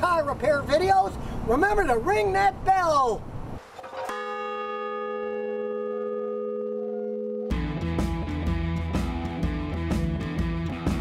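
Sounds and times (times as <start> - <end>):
large bell ringing: 3.9 - 8.0.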